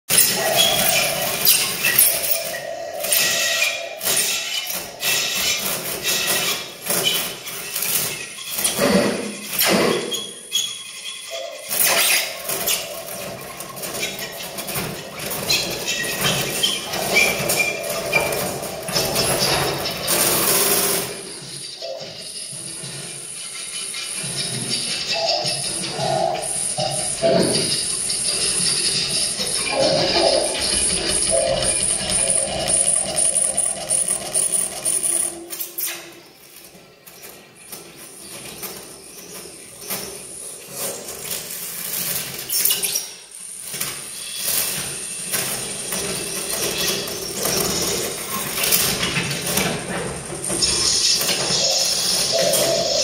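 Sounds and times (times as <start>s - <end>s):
electronic clicks and crackles: 25.1s - 36.6s.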